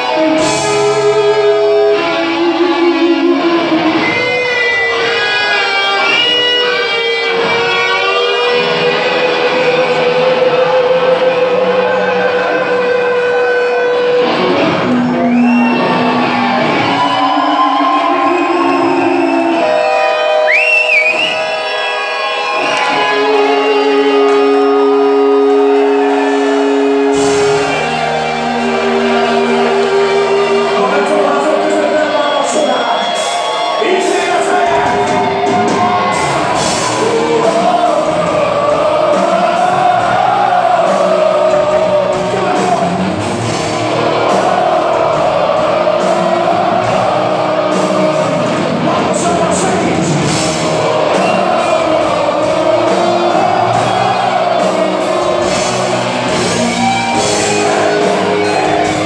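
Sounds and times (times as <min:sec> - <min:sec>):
electric guitar held bending notes: 0:00.0 - 0:34.1, 0:34.8 - 0:59.0
heavy metal band playing live: 0:00.0 - 0:59.0.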